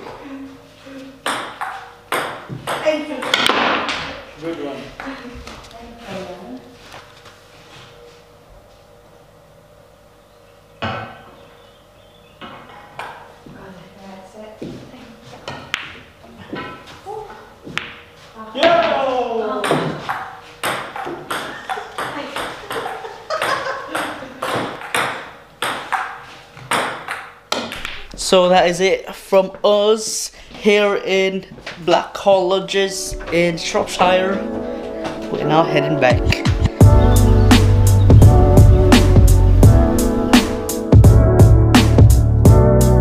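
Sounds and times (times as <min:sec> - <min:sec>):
pool balls clacking: 0:19.6 - 0:28.2.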